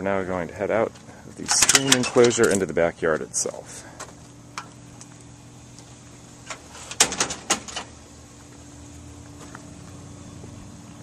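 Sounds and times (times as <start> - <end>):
steady low hum: 0.0 - 11.0
screen door swinging shut: 6.4 - 7.9.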